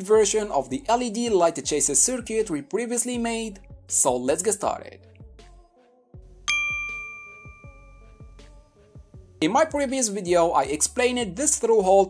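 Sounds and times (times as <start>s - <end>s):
quiet background music: 0.0s - 12.0s
bright chime: 6.5s - 8.4s.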